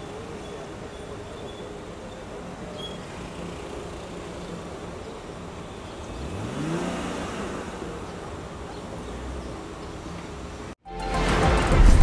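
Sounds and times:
street noise: 0.0 - 12.0
car engine revving: 5.4 - 10.6.

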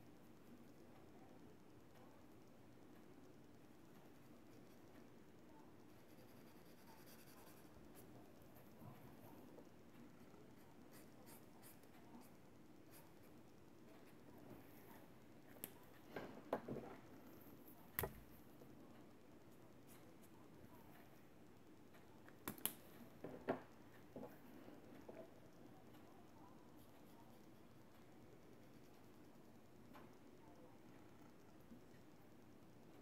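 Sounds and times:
brush pen scratching on paper: 5.9 - 8.1.

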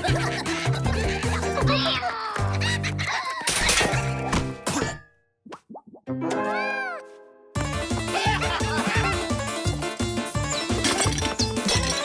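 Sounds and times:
cartoon music: 6.0 - 9.7.

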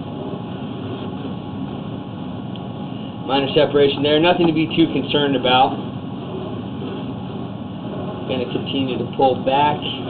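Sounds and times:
machine drone with low rumble: 0.0 - 10.0.

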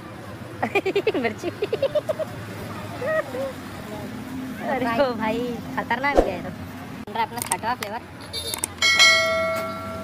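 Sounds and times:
metal object ringing like a bell: 8.8 - 10.0.

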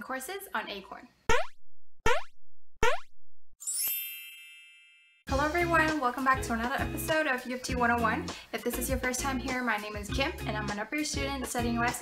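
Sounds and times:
rising cartoon pops: 1.3 - 3.2
sparkling chime: 3.6 - 5.2.

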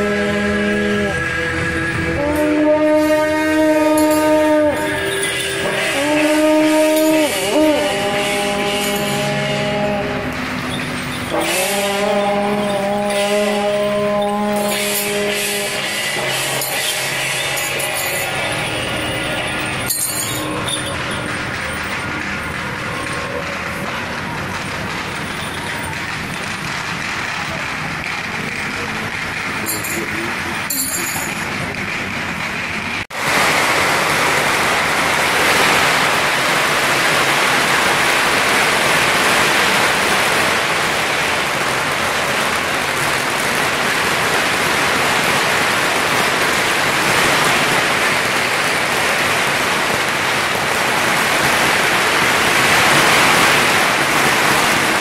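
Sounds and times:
brass horns holding notes: 0.0 - 25.6
crowd voices: 0.0 - 33.0
city traffic noise: 0.0 - 55.0.

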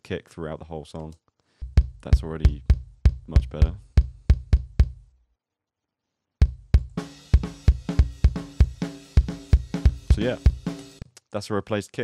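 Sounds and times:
kick drum pattern: 1.6 - 5.1, 6.4 - 11.0.

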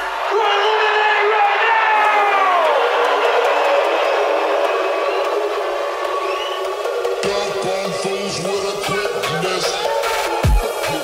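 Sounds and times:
electronic dance music build-up: 1.9 - 11.0.

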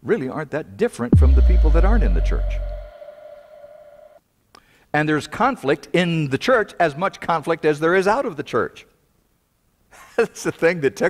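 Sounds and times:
held electronic tone: 1.2 - 4.2.

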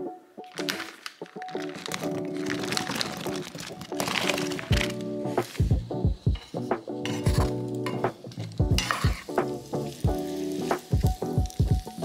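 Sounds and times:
background music with a beat: 4.7 - 12.0
wooden spoon stirring: 6.4 - 9.4
food sizzling in oil: 6.4 - 12.0.

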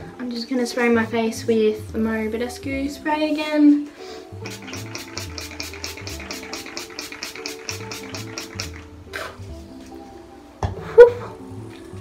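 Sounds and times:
soft background music: 0.0 - 12.0
spray bottle hissing sprays: 4.4 - 9.4.

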